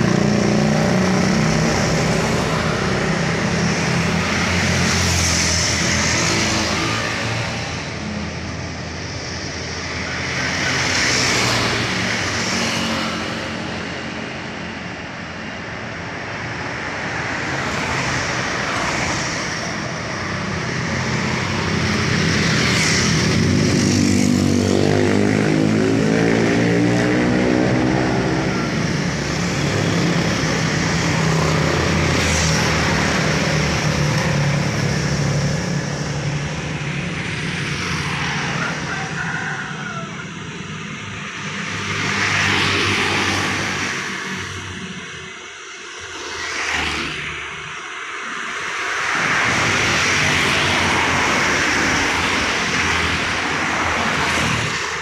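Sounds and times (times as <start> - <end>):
motor scooters passing: 0.0 - 55.0
car passing close by: 41.8 - 44.5, 46.2 - 47.5.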